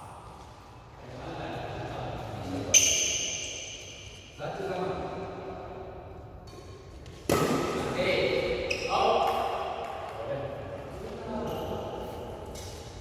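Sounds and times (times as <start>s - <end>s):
badminton racket strikes: 6.5s - 7.9s.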